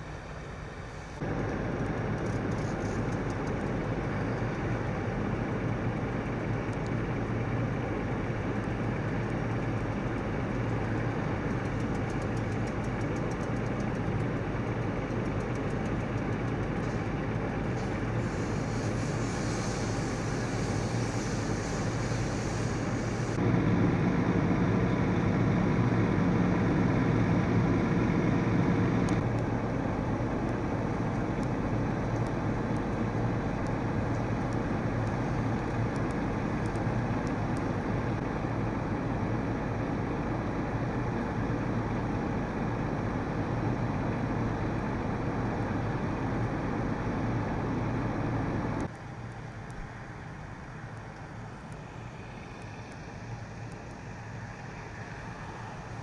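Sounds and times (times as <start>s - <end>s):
fire engine droning: 0.0s - 56.0s.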